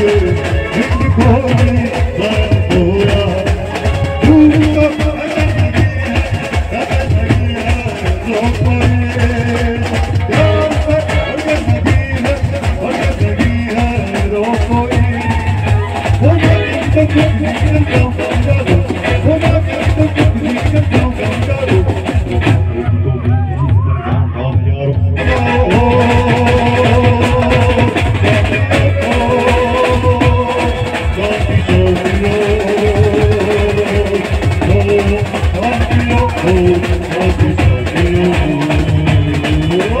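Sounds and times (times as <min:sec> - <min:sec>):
person singing into microphone: 0:00.0 - 0:40.0
tom drums steady beat: 0:00.0 - 0:40.0.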